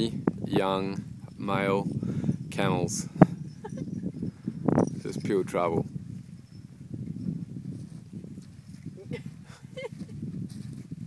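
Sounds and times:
camel footfalls and shuffling: 0:07.5 - 0:11.0.

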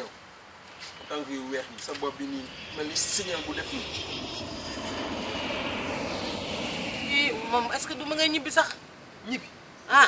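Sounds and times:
airplane flying overhead: 0:00.5 - 0:09.0.

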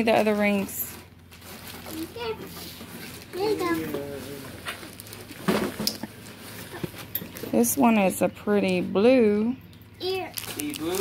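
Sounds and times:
plastic bags rustling: 0:00.0 - 0:08.2, 0:10.0 - 0:11.0.

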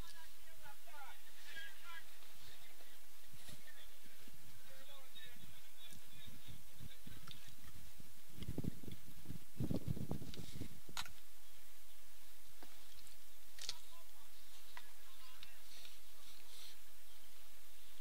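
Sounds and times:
faint distant voices: 0:00.0 - 0:09.6, 0:13.5 - 0:18.0
wind buffeting microphone: 0:06.2 - 0:11.2.

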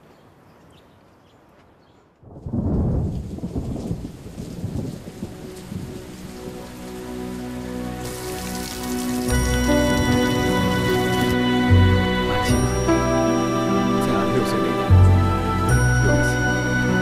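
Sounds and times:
thunder rolling: 0:02.3 - 0:06.7
heavy rain splashing into puddles: 0:02.6 - 0:12.8
music: 0:05.0 - 0:17.0.

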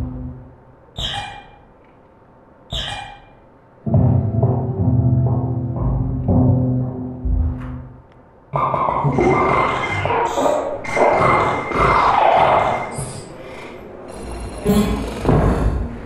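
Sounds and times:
low sustained drone tones: 0:03.8 - 0:08.1.

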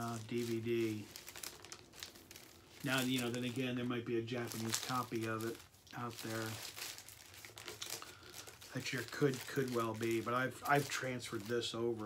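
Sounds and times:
sleeve rustling and crinkling: 0:00.0 - 0:12.0.

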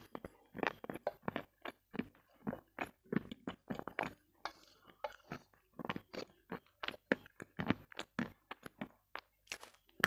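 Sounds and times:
person chewing with lip clicks: 0:00.0 - 0:10.0.

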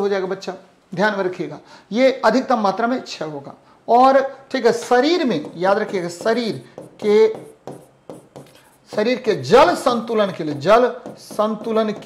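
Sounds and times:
pen tapping and scraping on screen: 0:05.2 - 0:09.4, 0:10.0 - 0:12.0.

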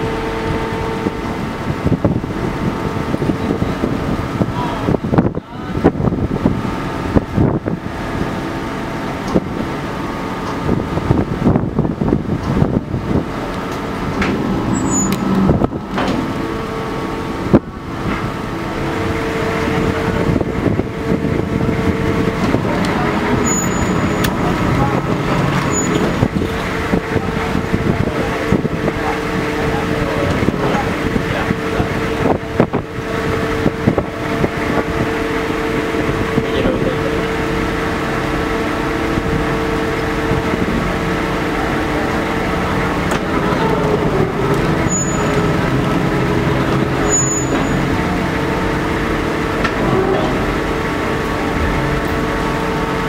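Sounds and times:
ferry engines droning: 0:00.0 - 0:53.0
steady mid-pitched tone: 0:11.9 - 0:28.2, 0:39.6 - 0:53.0.

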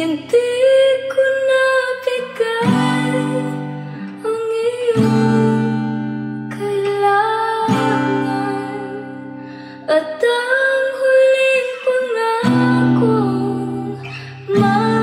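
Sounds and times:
acoustic guitar strumming: 0:00.0 - 0:15.0
woman singing a slow ballad: 0:00.0 - 0:15.0.

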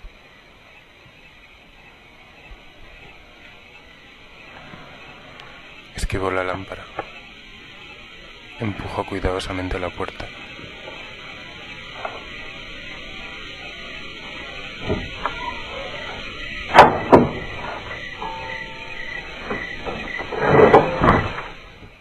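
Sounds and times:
clatter of hits: 0:16.6 - 0:21.9
sharp knocks: 0:16.7 - 0:21.6.

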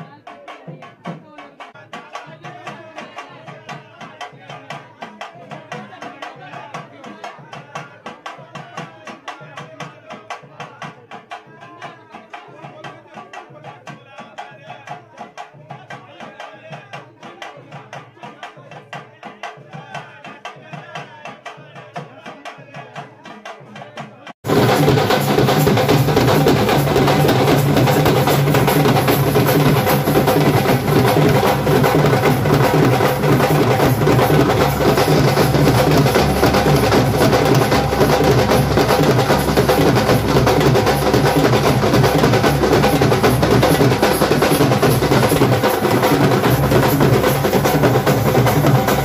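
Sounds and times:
drumming and percussion: 0:00.0 - 0:49.0.

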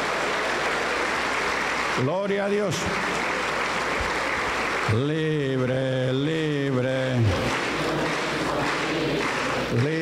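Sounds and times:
crowd applauding: 0:00.0 - 0:10.0.

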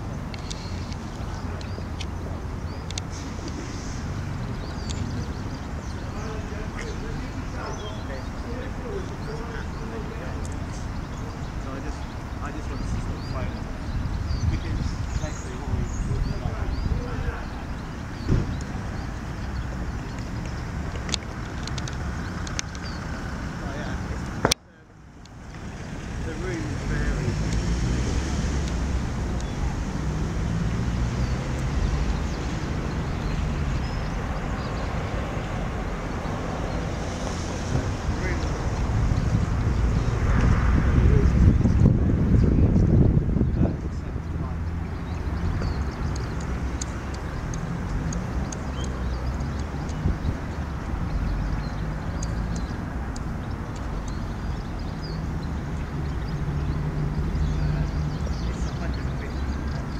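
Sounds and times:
low rumble of traffic: 0:00.0 - 0:59.9
wind buffeting microphone: 0:10.6 - 0:24.6, 0:25.3 - 0:59.9.

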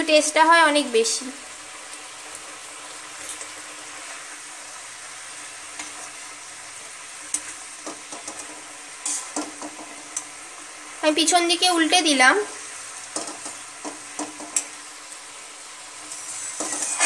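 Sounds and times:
fish curry bubbling and sizzling: 0:00.9 - 0:11.0, 0:12.2 - 0:17.0.

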